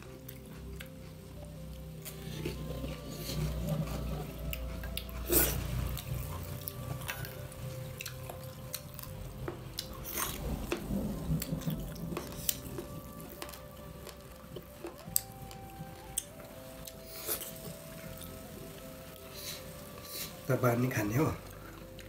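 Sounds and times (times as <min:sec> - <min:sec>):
chewing and mouth smacks: 0:00.0 - 0:18.3
faint background music: 0:00.0 - 0:22.0.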